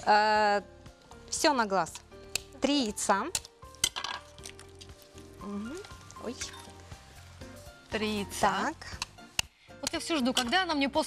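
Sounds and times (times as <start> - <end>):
soft background music: 0.0 - 11.0
egg cracked on glass bowl: 3.3 - 4.9.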